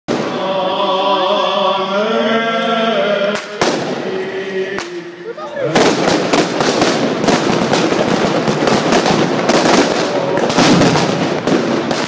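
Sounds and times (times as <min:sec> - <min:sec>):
firecracker bangs: 0:00.1 - 0:00.6, 0:03.3 - 0:12.0
firecrackers crackling: 0:00.1 - 0:00.7, 0:03.3 - 0:12.0
men singing a chant: 0:00.1 - 0:05.9.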